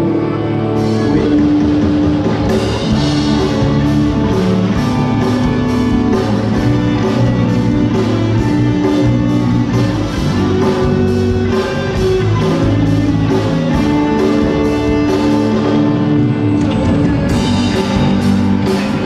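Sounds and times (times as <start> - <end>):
bass guitar: 0.0 - 19.0
electric guitars: 0.0 - 19.0
drum kit beat: 0.8 - 19.0.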